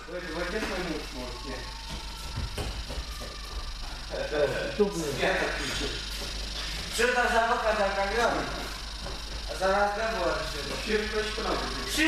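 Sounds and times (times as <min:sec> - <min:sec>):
young men talking: 0:00.0 - 0:01.8, 0:04.1 - 0:06.2, 0:06.8 - 0:08.8, 0:09.5 - 0:12.0.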